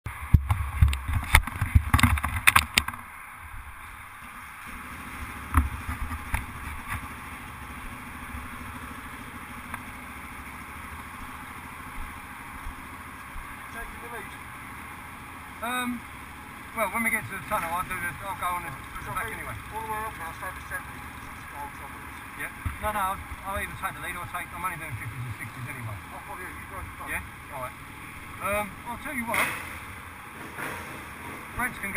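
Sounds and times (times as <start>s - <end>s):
quad bike engine idling: 0.1s - 31.9s.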